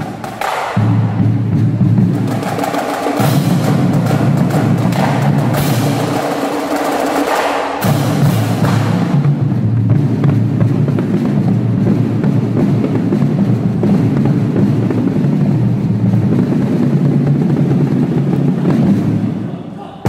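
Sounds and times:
bass drum roll: 0.0 - 6.3, 7.8 - 19.5.

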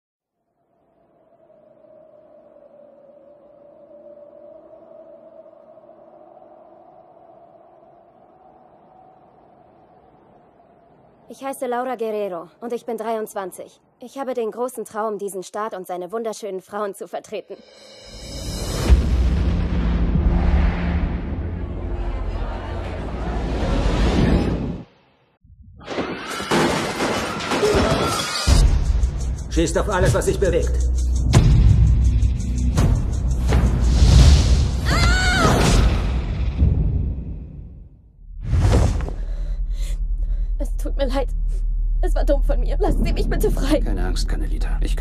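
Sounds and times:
rising swell: 0.6 - 11.3
loud rumbling din: 18.7 - 24.8.

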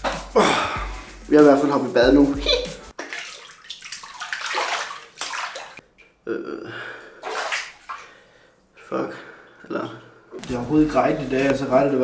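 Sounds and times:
water splashing in a bath: 2.9 - 6.0, 7.2 - 8.3.

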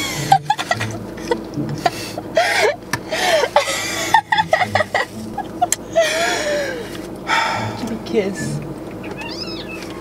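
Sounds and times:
high-pitched meow-like whine: 9.1 - 10.0.

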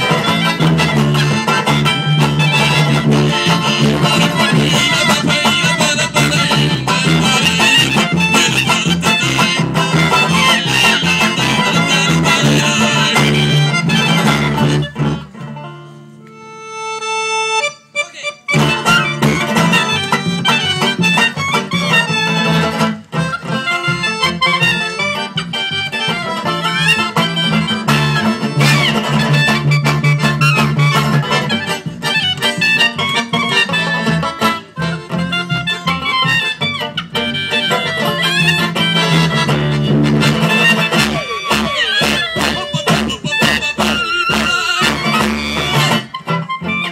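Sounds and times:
accordion: 0.0 - 46.9
guitar: 0.0 - 46.9
upright double bass: 0.0 - 46.9
woodwind: 0.0 - 46.9.

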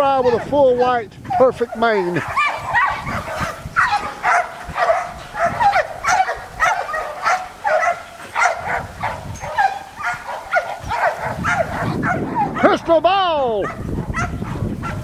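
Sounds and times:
dog barking: 0.1 - 12.8, 13.6 - 15.0.

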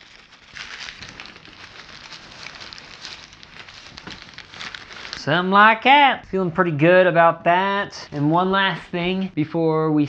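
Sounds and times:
packing material crackling: 0.0 - 5.5.

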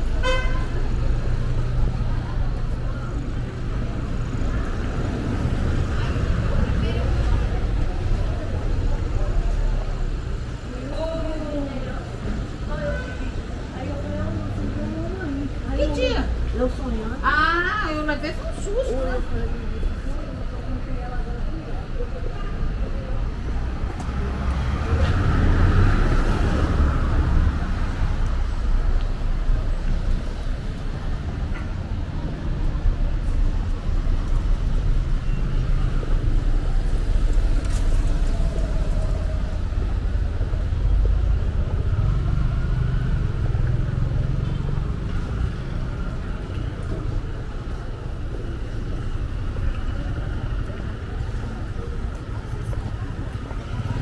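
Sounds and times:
car and motorcycle engines passing: 23.9 - 30.5, 33.0 - 54.0.

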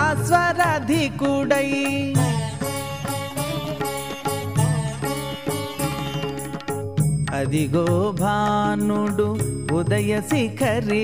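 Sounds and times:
devotional song: 0.0 - 11.0
percussion strokes: 0.0 - 11.0.

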